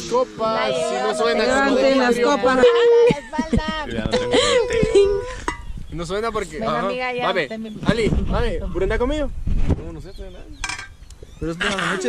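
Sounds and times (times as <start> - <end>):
people talking: 0.0 - 5.4, 11.4 - 12.0.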